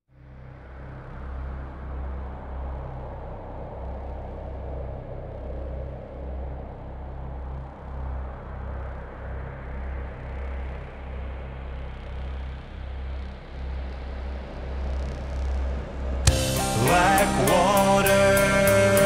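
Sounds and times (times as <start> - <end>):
low throbbing drone: 0.1 - 19.0
rushing noise: 0.3 - 19.0.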